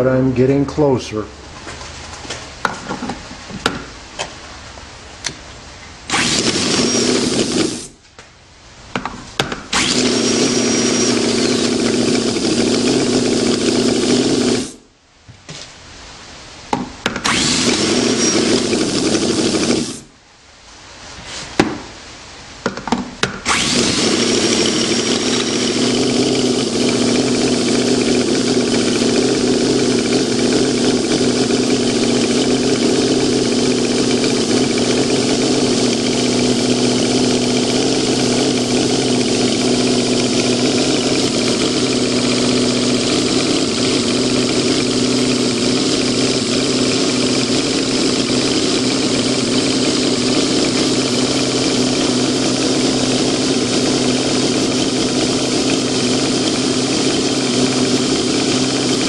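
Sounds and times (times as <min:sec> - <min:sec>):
miniature engine idling: 0:09.7 - 0:14.8, 0:17.2 - 0:20.0, 0:23.5 - 0:59.0.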